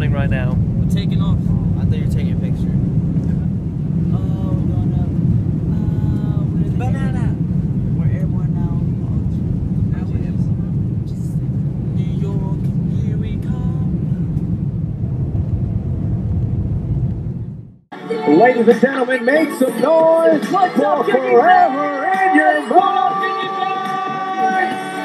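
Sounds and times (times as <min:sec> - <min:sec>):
jet engines rumbling: 0:00.0 - 0:17.9
voices talking: 0:04.1 - 0:07.4.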